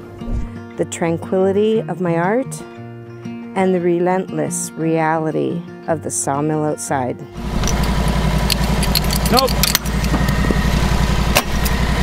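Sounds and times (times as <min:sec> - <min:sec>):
sawmill engine running: 0:07.4 - 0:12.0.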